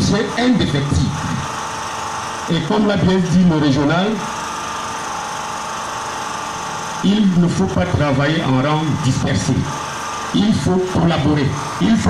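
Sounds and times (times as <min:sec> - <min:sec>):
machine drone with high whine: 0:00.0 - 0:12.0.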